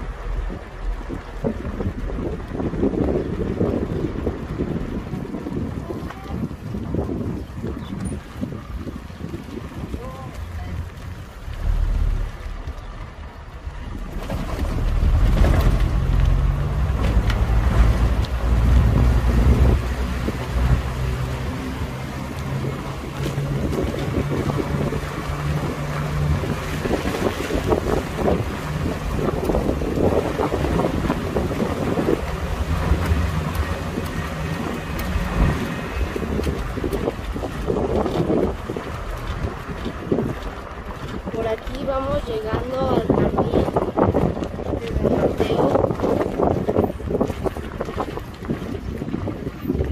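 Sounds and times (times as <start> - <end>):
car engine and tyre noise: 0.0 - 49.9
wind buffeting microphone: 0.0 - 49.9.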